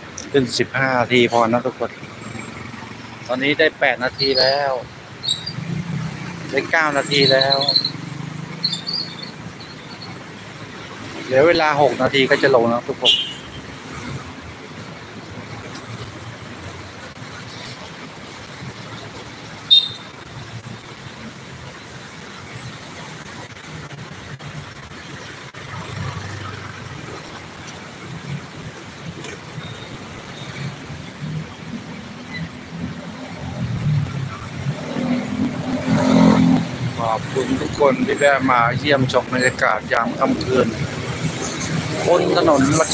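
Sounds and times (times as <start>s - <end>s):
road traffic noise: 0.0s - 42.9s.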